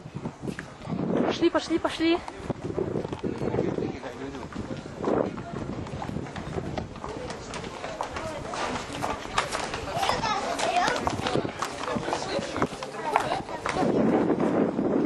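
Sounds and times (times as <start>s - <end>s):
footsteps: 1.9s - 15.0s.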